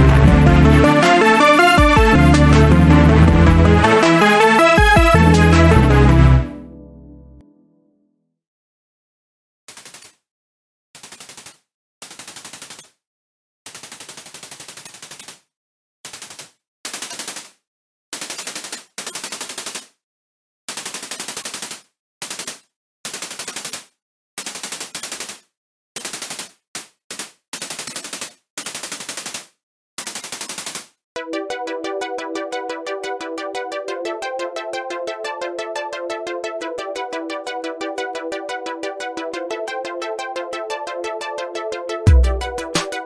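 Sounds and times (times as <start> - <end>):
sustained synthesizer chord: 0.0 - 7.5, 31.2 - 42.8.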